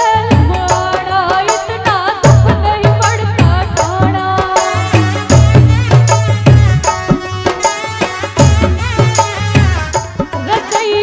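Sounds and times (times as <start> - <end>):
heavy steady drum beat: 0.0 - 11.0.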